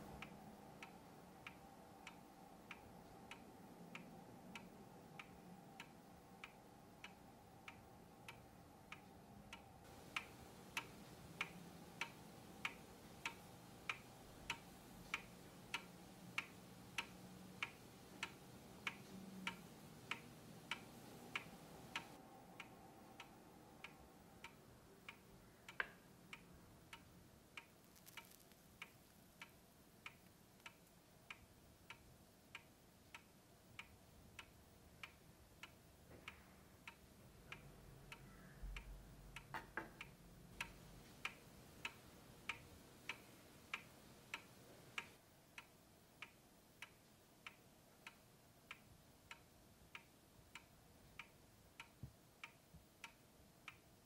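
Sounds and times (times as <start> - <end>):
clock ticking: 0.0 - 54.0.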